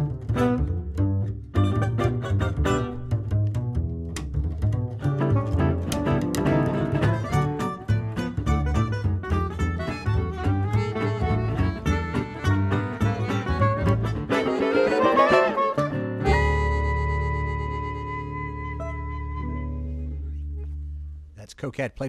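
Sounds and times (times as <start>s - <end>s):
plucked upright bass: 0.0s - 21.4s
acoustic guitar rhythm chords: 0.0s - 21.5s.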